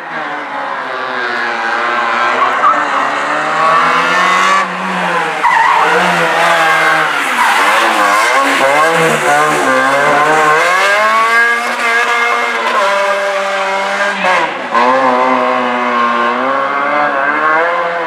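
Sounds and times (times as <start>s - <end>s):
car engine revving hard: 0.0s - 18.0s.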